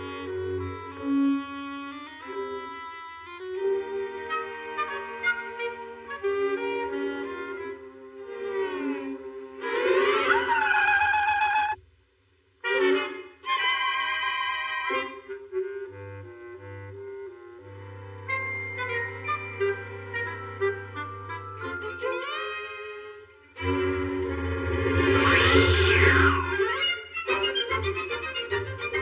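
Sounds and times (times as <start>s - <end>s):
cartoon instrumental music: 14.9s - 23.0s, 23.6s - 29.0s.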